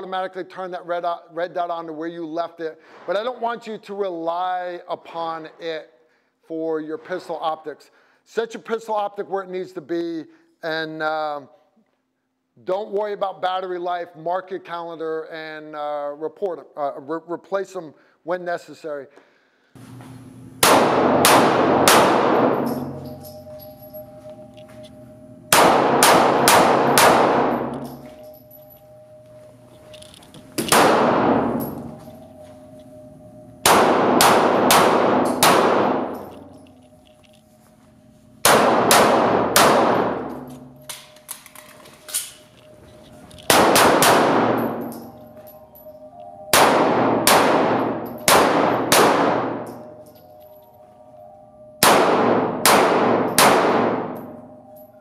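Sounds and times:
pistol shots echoing indoors: 0:20.5 - 0:37.4, 0:38.4 - 0:50.8, 0:51.5 - 0:55.0.

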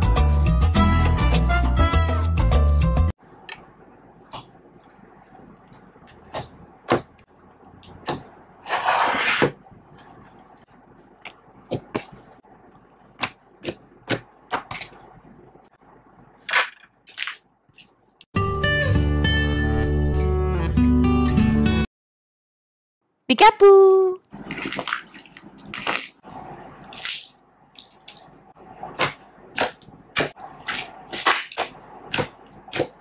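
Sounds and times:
slime squelching and crackling: 0:24.4 - 0:26.2
loud slime squishes: 0:24.4 - 0:26.3, 0:26.9 - 0:33.0.

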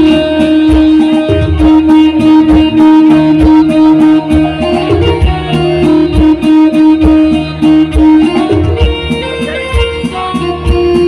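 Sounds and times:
low percussion beat: 0:00.0 - 0:11.0
plucked-string melody: 0:00.0 - 0:11.0.

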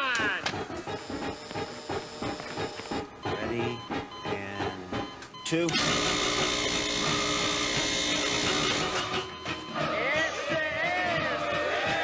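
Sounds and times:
electric buzzing drone: 0:05.8 - 0:09.0.

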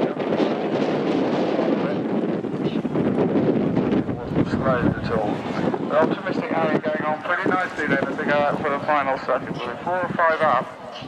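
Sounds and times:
murmur of voices: 0:00.0 - 0:11.0
wind buffeting microphone: 0:00.0 - 0:11.0.

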